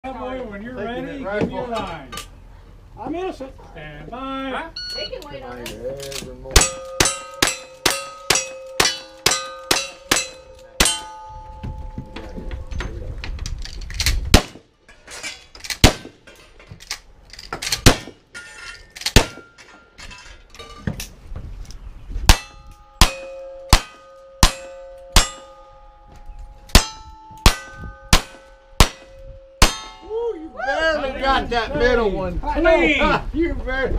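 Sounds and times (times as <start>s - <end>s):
steel target ringing: 6.6s - 12.7s, 22.3s - 30.3s
gunshots: 14.3s - 14.7s, 15.8s - 16.2s, 17.8s - 18.2s, 19.1s - 19.5s.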